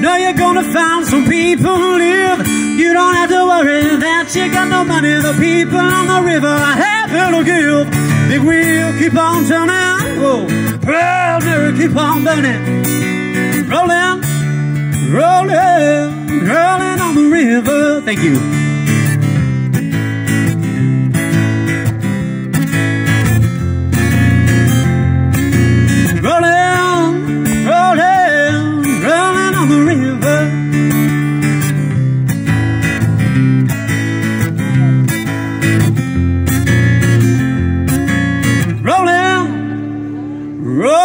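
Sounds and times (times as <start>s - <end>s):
acoustic guitar strumming: 0.0s - 41.0s.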